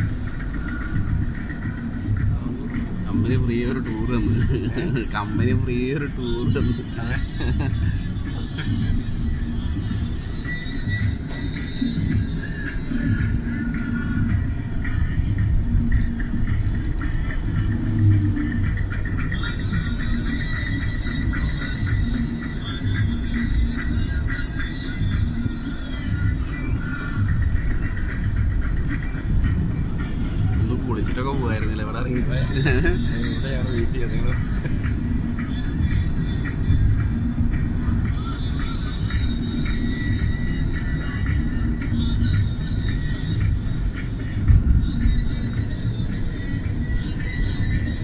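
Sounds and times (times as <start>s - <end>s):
vehicle road and engine rumble: 0.0s - 48.0s.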